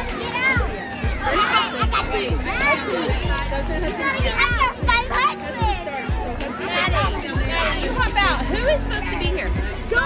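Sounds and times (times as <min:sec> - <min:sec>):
children shouting and cheering: 0:00.0 - 0:10.0
music with low beat: 0:00.0 - 0:10.0.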